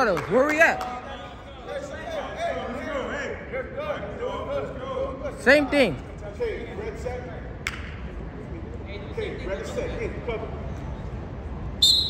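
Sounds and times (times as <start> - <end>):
gym room noise: 0.0 - 12.0.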